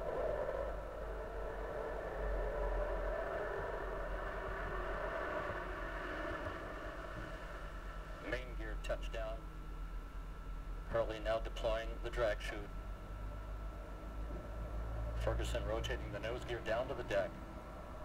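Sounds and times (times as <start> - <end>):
faint low hum: 0.0 - 18.0.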